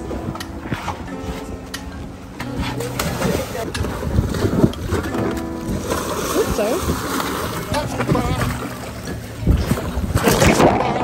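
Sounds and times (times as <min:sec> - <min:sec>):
water splashing and sloshing: 0:00.0 - 0:11.0
wind on microphone: 0:00.0 - 0:11.0.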